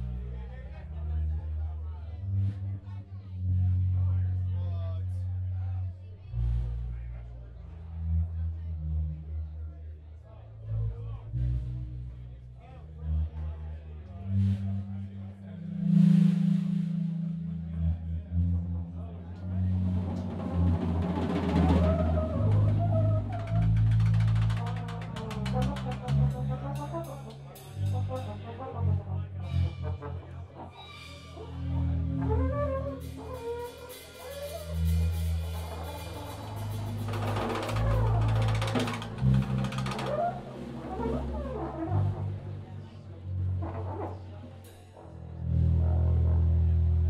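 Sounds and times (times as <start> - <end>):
electric bass and trombone: 14.2 - 47.0
drum roll: 19.7 - 28.2, 32.3 - 41.7.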